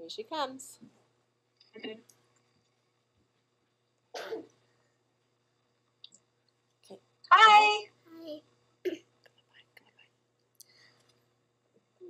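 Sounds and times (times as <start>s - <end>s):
person clearing throat: 4.2s - 4.5s.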